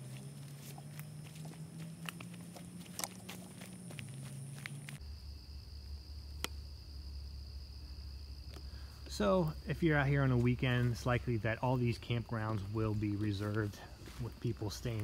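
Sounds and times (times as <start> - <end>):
footsteps crunching on dry leaves: 0.0 - 5.0, 8.9 - 15.0.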